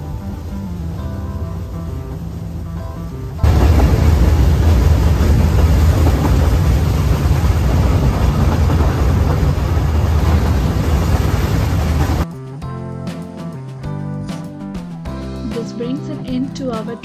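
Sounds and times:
rushing noise: 0:00.0 - 0:12.2
train running low rumble: 0:00.0 - 0:12.2.

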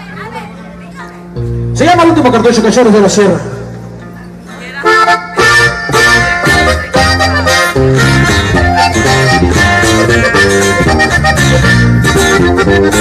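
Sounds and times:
low bass notes: 0:01.3 - 0:13.0
button accordion playing: 0:04.8 - 0:13.0.

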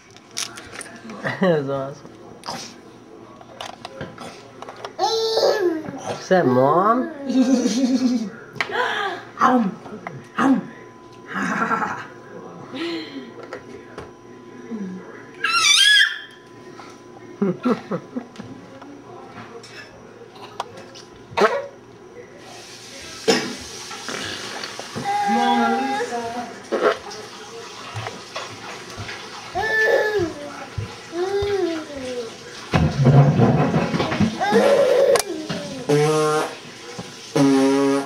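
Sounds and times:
baby cooing: 0:05.0 - 0:06.2, 0:25.0 - 0:26.1, 0:29.6 - 0:30.5, 0:34.4 - 0:36.0
baby squealing: 0:15.4 - 0:16.4
rough noisy baby vocal burst: 0:24.0 - 0:27.0.

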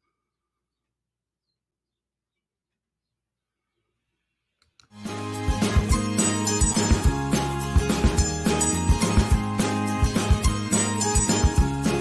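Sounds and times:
intro music: 0:05.0 - 0:12.0.

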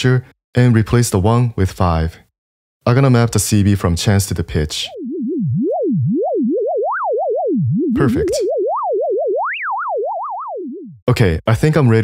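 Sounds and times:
sine tone gliding up and down: 0:04.8 - 0:11.1.

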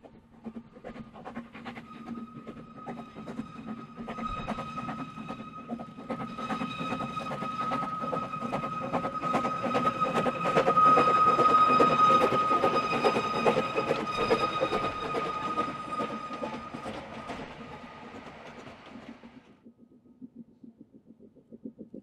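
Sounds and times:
high-pitched wheel squeal: 0:01.6 - 0:19.4
train clattering over rails: 0:02.6 - 0:19.5.

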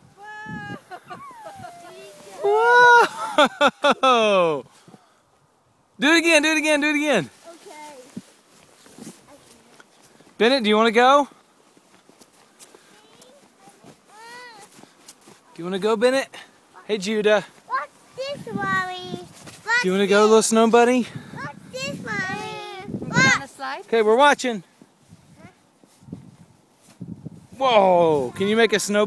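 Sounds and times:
child squealing: 0:00.1 - 0:03.3
footsteps crunching in snow: 0:00.8 - 0:02.7, 0:06.6 - 0:29.0
small child's voice: 0:07.4 - 0:08.2, 0:09.2 - 0:09.8, 0:12.9 - 0:15.6, 0:17.7 - 0:19.9, 0:21.4 - 0:23.8, 0:25.3 - 0:25.6.

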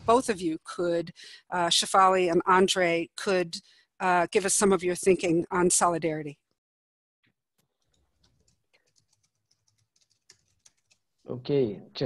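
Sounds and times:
keyboard typing clicks: 0:07.7 - 0:11.0.

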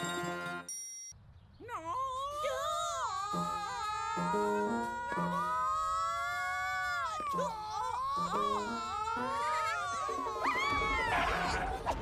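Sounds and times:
wordless cartoon vocals wailing: 0:01.9 - 0:12.0
background music with low notes: 0:03.4 - 0:05.6.

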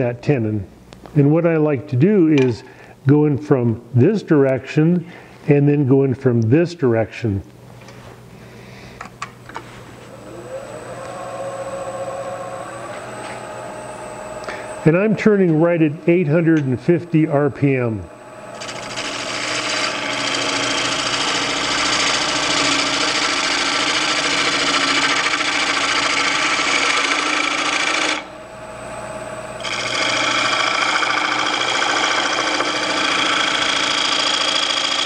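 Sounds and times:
wood lathe humming: 0:10.0 - 0:35.0.

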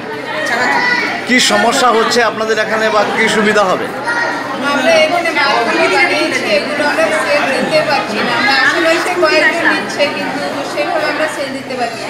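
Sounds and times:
background voices chattering: 0:00.0 - 0:12.0
woman speaking: 0:04.6 - 0:12.0.

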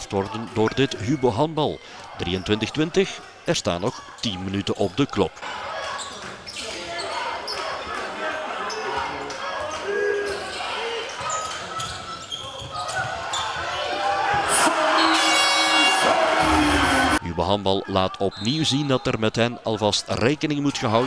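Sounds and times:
echoing voices: 0:00.0 - 0:21.0
crowd cheering: 0:05.4 - 0:21.0.

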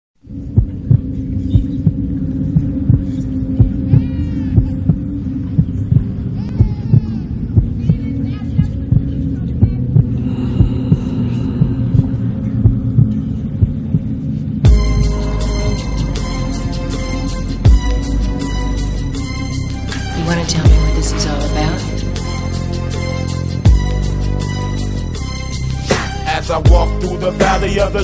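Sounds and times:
deep heartbeat-like thumps: 0:00.2 - 0:16.4
low droning hum: 0:00.2 - 0:25.8.

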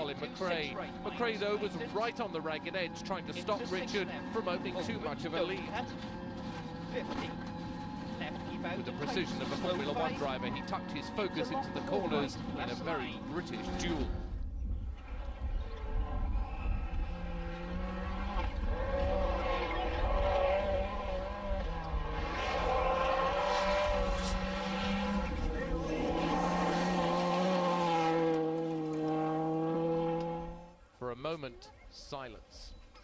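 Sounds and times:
rally car engine at high revs: 0:00.0 - 0:14.3, 0:15.0 - 0:30.8.

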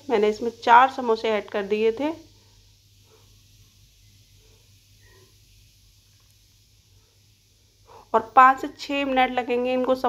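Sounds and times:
food deep-frying in oil: 0:00.0 - 0:10.0.

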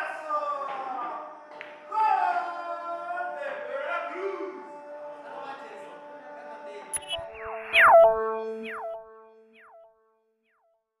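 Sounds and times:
held low tone: 0:07.0 - 0:09.9
electronic swoop with echo: 0:07.0 - 0:10.0.

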